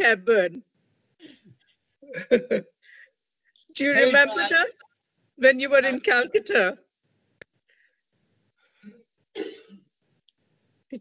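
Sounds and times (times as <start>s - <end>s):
person clearing throat: 9.4s - 9.9s.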